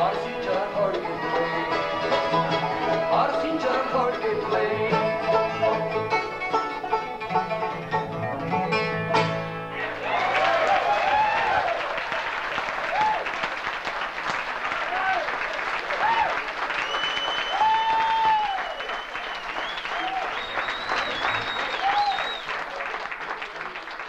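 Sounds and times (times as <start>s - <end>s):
audience applauding and cheering: 9.7s - 24.0s
shouts and whistles: 16.0s - 22.7s.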